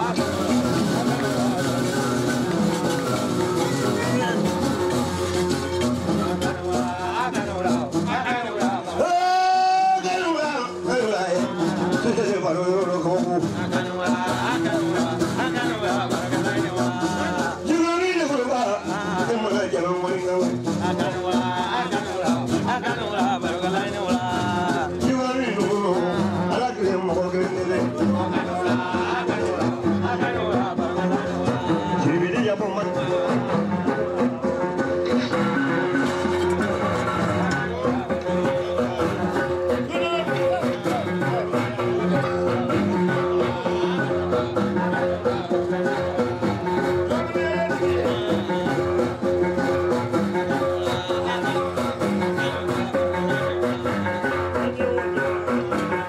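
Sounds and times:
plucked harp-lute pattern: 0:00.0 - 0:08.8.

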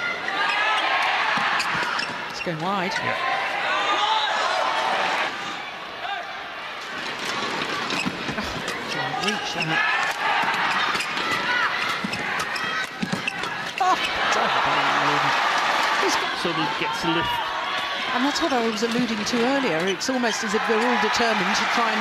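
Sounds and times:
crowd cheering: 0:00.0 - 0:22.0
crowd noise: 0:00.0 - 0:22.0.

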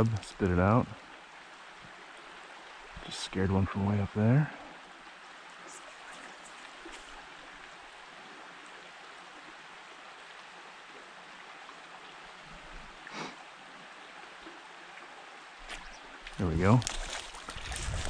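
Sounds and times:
creek water rushing: 0:00.0 - 0:18.0.

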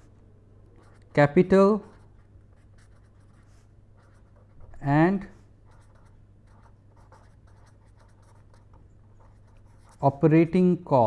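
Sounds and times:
low steady hum: 0:00.0 - 0:11.0
pen scratching on paper: 0:00.8 - 0:01.1, 0:01.8 - 0:04.8, 0:05.6 - 0:10.1.

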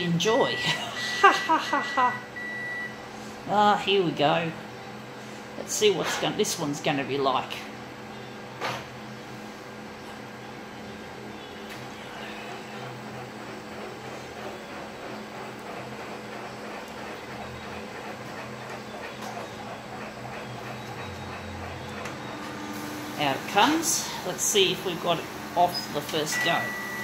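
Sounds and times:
copier motors whirring: 0:00.0 - 0:27.0.

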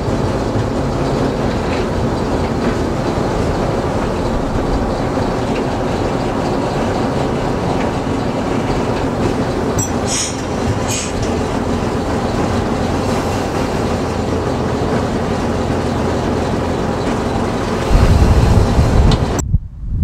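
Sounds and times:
diesel locomotive engine running: 0:00.0 - 0:19.5
wheels rumbling on track: 0:00.0 - 0:20.0.

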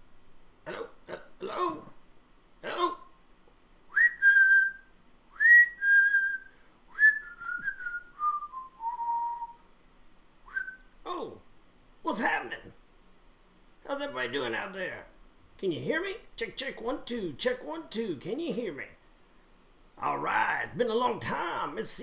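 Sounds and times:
throaty vocal noises: 0:00.6 - 0:02.0
person whistling a tune: 0:03.9 - 0:09.6, 0:10.5 - 0:10.9.

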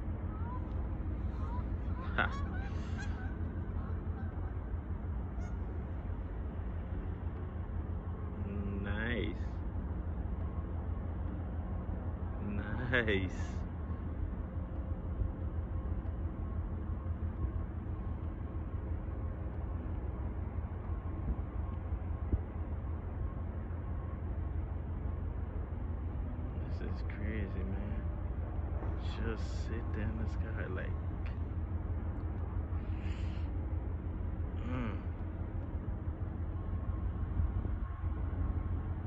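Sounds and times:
faint hum: 0:00.0 - 0:39.0
wind rumble on microphone: 0:00.0 - 0:39.0
water birds honking: 0:00.3 - 0:06.4.

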